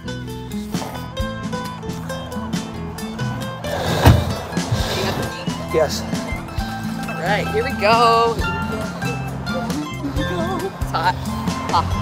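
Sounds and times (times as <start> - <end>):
music playing: 0.0 - 12.0
car door shutting: 3.7 - 5.3.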